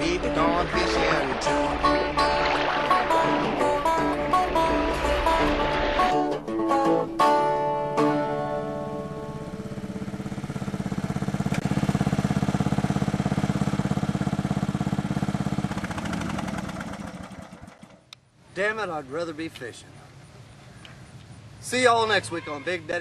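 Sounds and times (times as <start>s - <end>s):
plucked-string music: 0.0s - 11.6s
riding lawn mower engine running: 0.0s - 18.2s.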